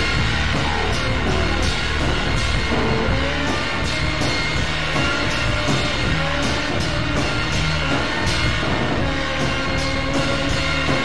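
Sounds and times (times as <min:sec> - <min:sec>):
blues-rock band playing: 0:00.0 - 0:11.0
drum and cymbal strikes: 0:00.0 - 0:11.0.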